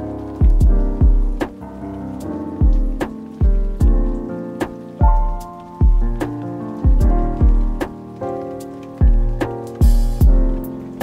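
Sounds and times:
sustained keyboard chords: 0:00.0 - 0:11.0
deep kick drums: 0:00.4 - 0:01.6, 0:02.6 - 0:08.0, 0:09.0 - 0:10.7
sharp drum hits: 0:09.1 - 0:10.5.

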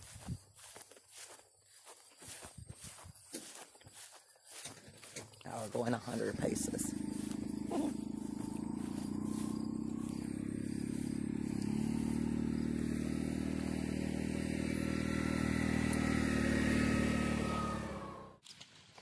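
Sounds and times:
small vehicle engine running: 0:02.8 - 0:18.4.

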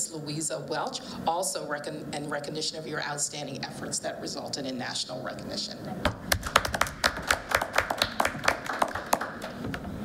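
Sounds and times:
people clapping: 0:06.1 - 0:09.9.

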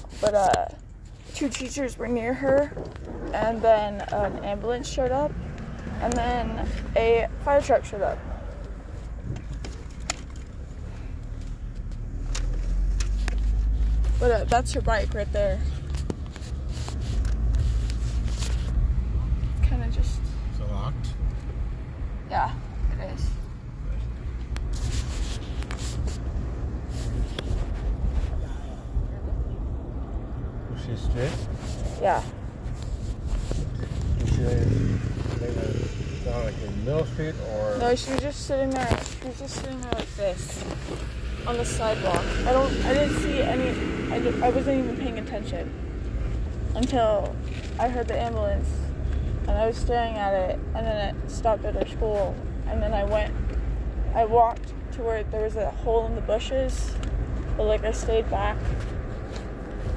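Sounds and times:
car rumble from inside cabin: 0:00.0 - 0:59.9
road noise: 0:00.0 - 0:59.9.

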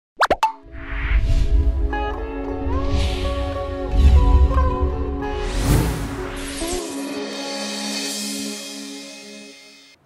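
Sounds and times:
electronic intro music: 0:00.6 - 0:10.0.

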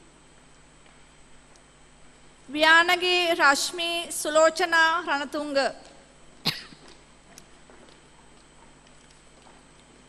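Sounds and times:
person coughing: 0:06.4 - 0:07.0.

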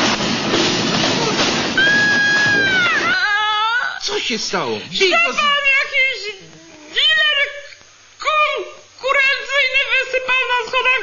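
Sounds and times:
long high-pitched wail: 0:01.8 - 0:03.9.

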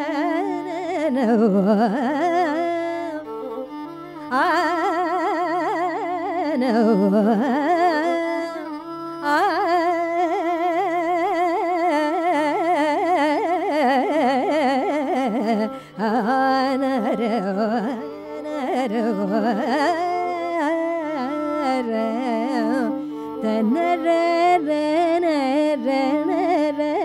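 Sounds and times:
woman singing ornamented phrases: 0:00.0 - 0:03.2, 0:04.3 - 0:27.0
violin: 0:00.0 - 0:27.0.

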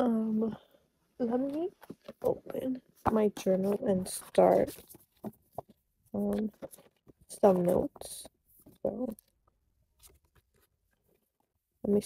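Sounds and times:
paper journal rustling: 0:03.3 - 0:11.5.

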